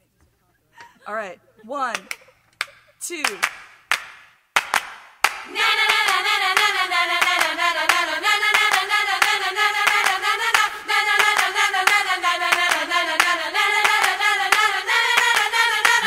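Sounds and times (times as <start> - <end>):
hand claps: 1.9 - 16.0
girls chanting a cheer: 5.4 - 16.0.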